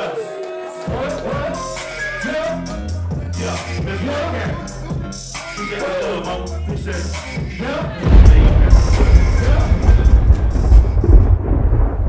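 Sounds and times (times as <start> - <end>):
deep thunder-like rumble: 8.0 - 12.0.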